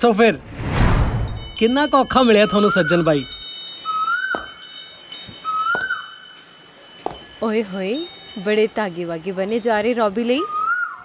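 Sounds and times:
wind chimes tinkling: 1.3 - 10.5.

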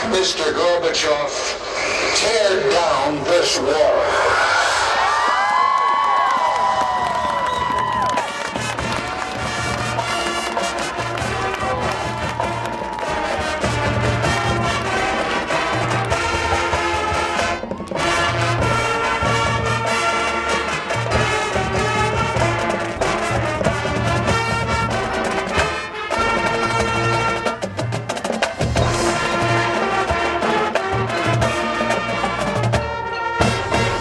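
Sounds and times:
crowd cheering and whooping: 4.0 - 18.8
marching band playing: 5.3 - 34.0.

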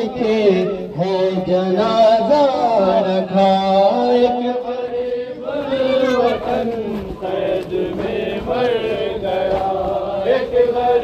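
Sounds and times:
person chanting a lament: 0.0 - 11.0.

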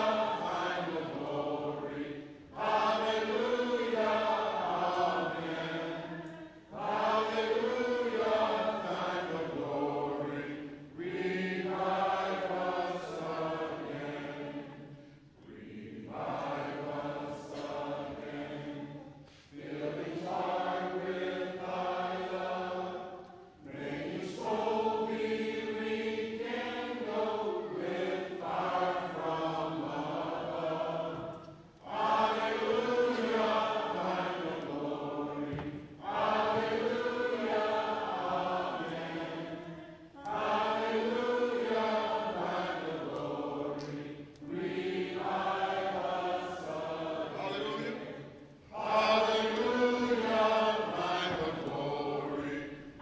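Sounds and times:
hymn singing: 0.0 - 53.0.

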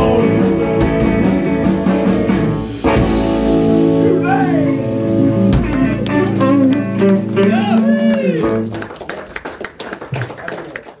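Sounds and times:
audience clapping: 5.5 - 11.0.

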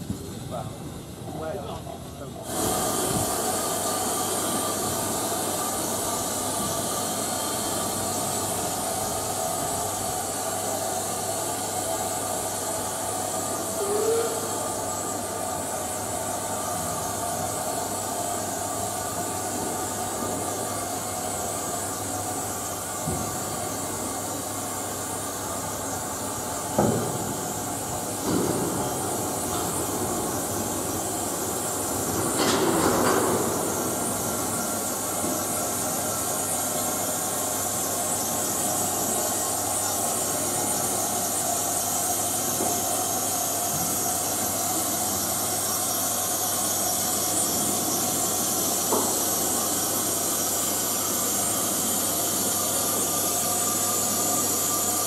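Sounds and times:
steam locomotive hissing: 2.2 - 55.0.

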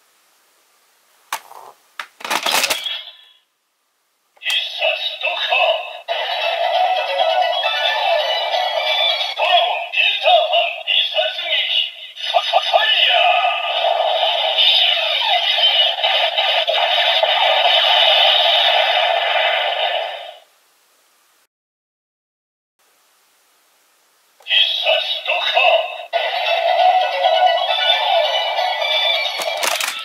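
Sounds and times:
synthesised song from toy speaker: 4.4 - 20.4, 24.4 - 30.0.

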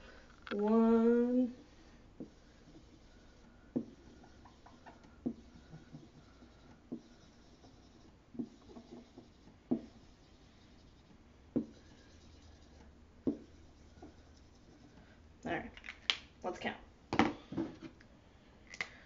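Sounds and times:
marker rubbing on a whiteboard: 1.5 - 15.2
marker tapping a whiteboard: 3.7 - 10.1, 11.5 - 12.0, 12.7 - 14.3.

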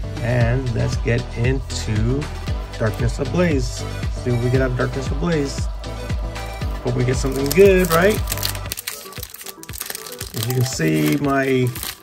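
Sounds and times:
background music: 0.0 - 12.0
foil wrapper crinkling: 7.1 - 12.0.

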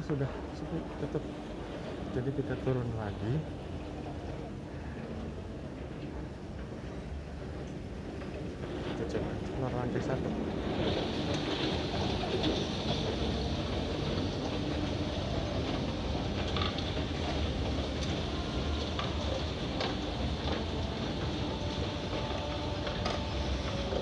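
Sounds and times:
escalator mechanical rumble: 0.0 - 24.0.

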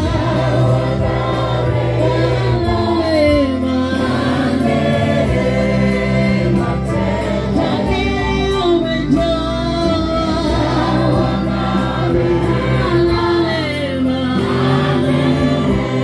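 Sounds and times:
choir singing gospel song: 0.0 - 16.0.

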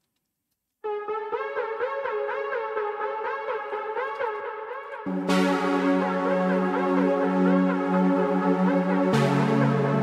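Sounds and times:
synth lead with pitch glides: 0.9 - 10.0.

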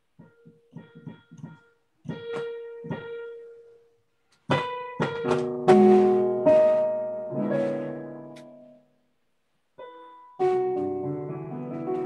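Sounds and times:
electronic keyboard piano chords: 0.2 - 3.7, 4.5 - 8.8, 9.8 - 12.0.

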